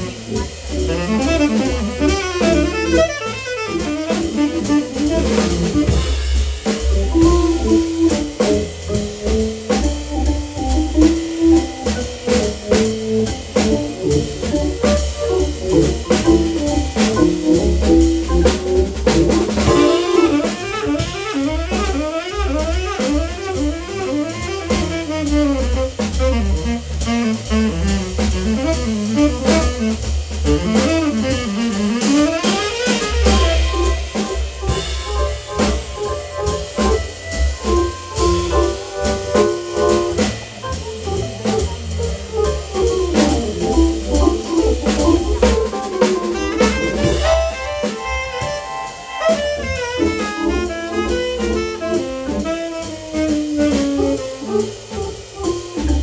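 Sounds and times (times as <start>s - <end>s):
saxophone: 0.0s - 6.2s, 13.6s - 56.0s
drum kit swing beat: 0.0s - 56.0s.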